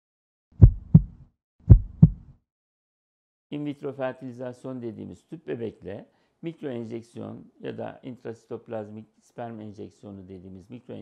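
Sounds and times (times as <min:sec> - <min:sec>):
heartbeat thumps: 0:00.6 - 0:02.3.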